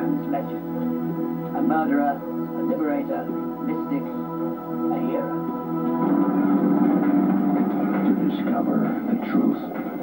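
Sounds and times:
loud low rumbling trailer soundtrack: 5.5s - 8.6s.

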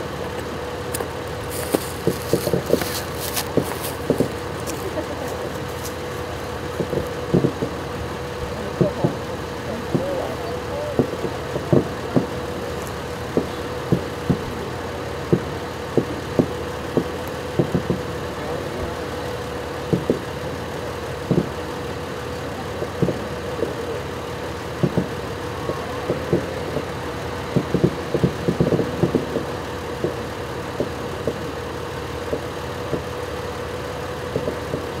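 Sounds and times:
steady hum: 0.0s - 35.0s
distant fireworks thumps: 0.3s - 20.5s, 21.2s - 21.6s, 22.8s - 24.0s, 24.7s - 33.3s, 34.2s - 35.0s.

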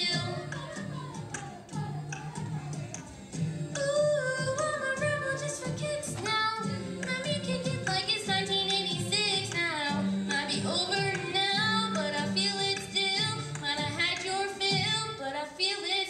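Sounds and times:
girl singing pop melody: 0.0s - 16.0s.

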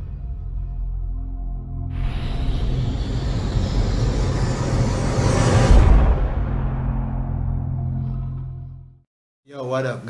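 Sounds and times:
deep rumble: 0.0s - 9.0s
cinematic whoosh: 1.9s - 8.6s.

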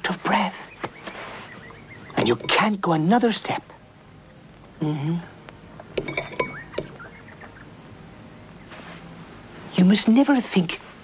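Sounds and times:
crockery clinking: 2.2s - 2.7s, 6.0s - 7.0s.

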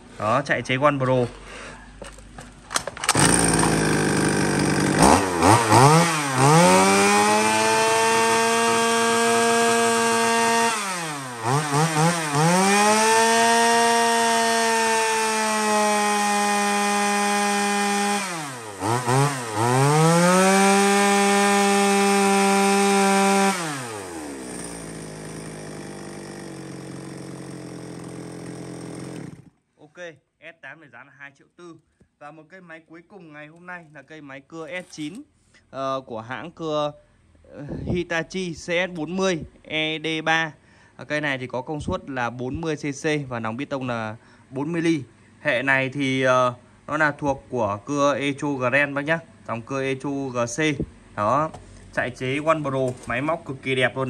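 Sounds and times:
chainsaw revving: 3.0s - 29.6s.

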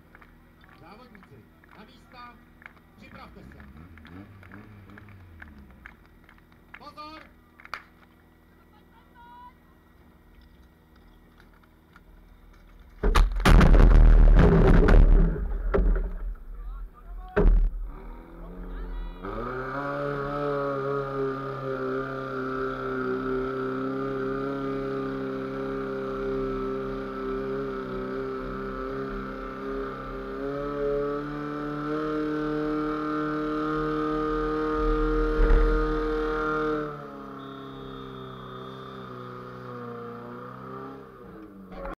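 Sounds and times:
pump engine running at high revs: 19.2s - 41.4s.

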